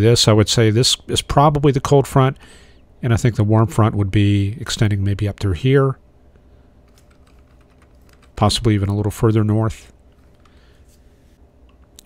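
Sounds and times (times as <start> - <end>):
low steady hum: 0.0 - 12.0
computer keyboard clicks: 6.9 - 8.4.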